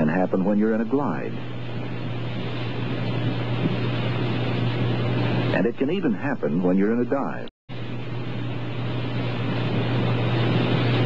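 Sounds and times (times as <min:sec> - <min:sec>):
blower humming: 0:00.0 - 0:11.0
air rushing: 0:01.3 - 0:05.6, 0:07.8 - 0:11.0.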